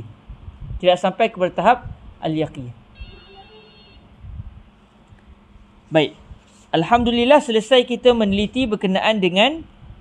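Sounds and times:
phone alert tone: 0:03.0 - 0:04.0.

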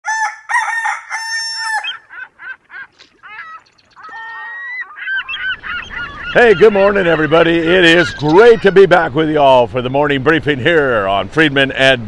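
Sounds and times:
rooster crowing: 0:00.0 - 0:02.1
short bird calls: 0:01.6 - 0:06.7.

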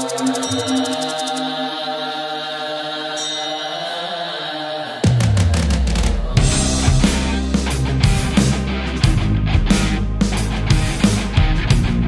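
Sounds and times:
chant-like vocal drone: 0:00.0 - 0:08.8
sustained music: 0:00.0 - 0:12.0.

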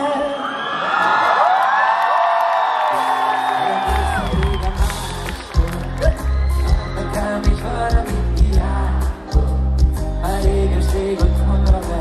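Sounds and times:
concert crowd cheering and singing: 0:00.0 - 0:12.0.

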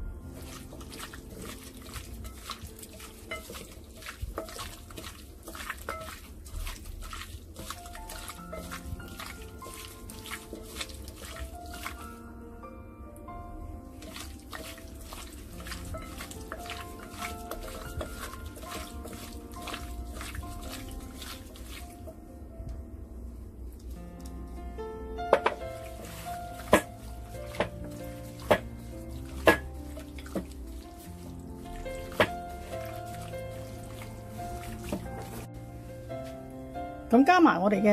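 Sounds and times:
wet squelching of meat mixing: 0:00.0 - 0:12.2, 0:13.8 - 0:22.2, 0:23.3 - 0:36.4
background music: 0:00.0 - 0:37.9.

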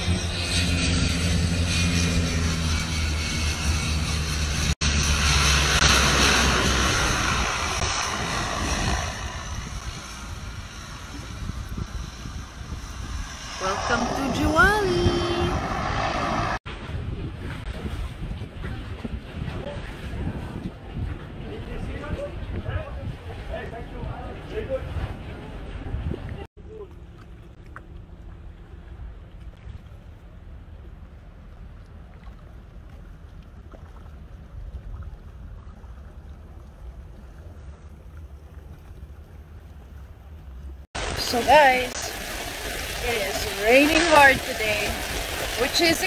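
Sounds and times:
wind noise on microphone: 0:00.0 - 0:26.8
low engine rumble: 0:00.0 - 0:46.0.

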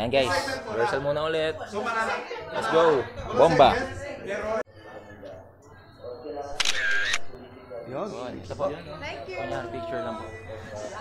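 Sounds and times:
faint chatter: 0:00.0 - 0:11.0
phone camera shutter: 0:06.6 - 0:07.3.

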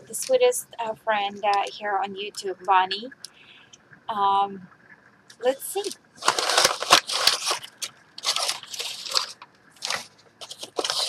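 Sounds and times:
packing paper crackling and rustling: 0:05.8 - 0:11.0.

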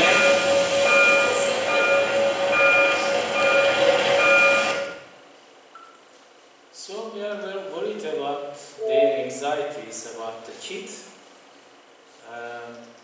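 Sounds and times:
faint room hum: 0:00.0 - 0:13.0
short high tone repeating: 0:08.8 - 0:09.3.

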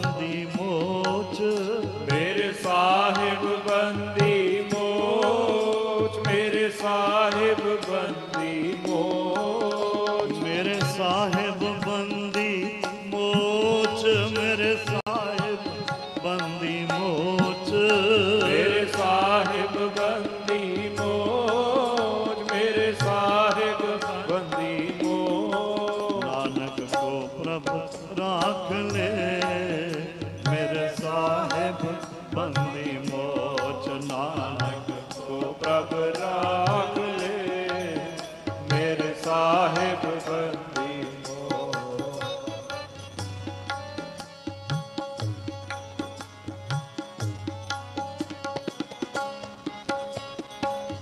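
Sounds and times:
harmonium chords: 0:00.0 - 0:51.0
men singing devotional song: 0:00.0 - 0:51.0
tabla strokes: 0:00.0 - 0:51.0.

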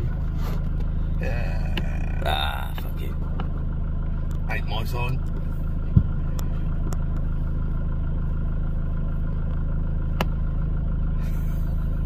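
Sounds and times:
engine idling: 0:00.0 - 0:12.0.

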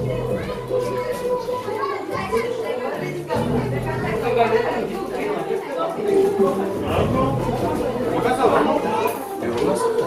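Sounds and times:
background music with held notes: 0:00.0 - 0:10.0
people talking: 0:00.0 - 0:10.0.

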